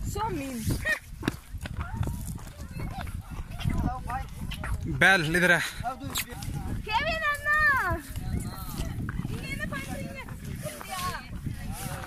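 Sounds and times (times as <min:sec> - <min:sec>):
footsteps on dirt trail: 0:00.0 - 0:12.0
people talking and calling out: 0:00.0 - 0:12.0.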